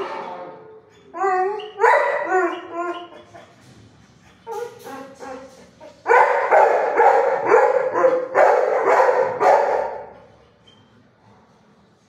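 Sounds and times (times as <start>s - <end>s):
dogs barking: 1.2s - 3.6s, 4.4s - 10.3s.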